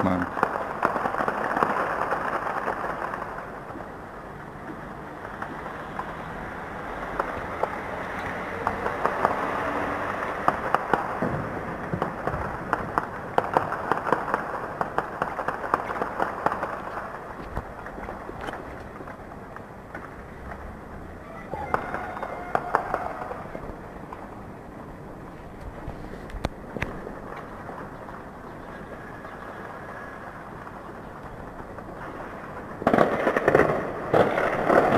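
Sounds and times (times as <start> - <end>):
rushing background noise: 0.0 - 34.9.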